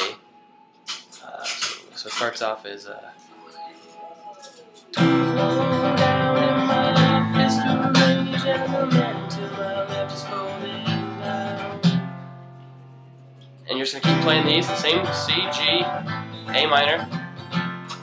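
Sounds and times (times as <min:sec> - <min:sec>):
acoustic guitar strumming chords: 0:04.4 - 0:18.0.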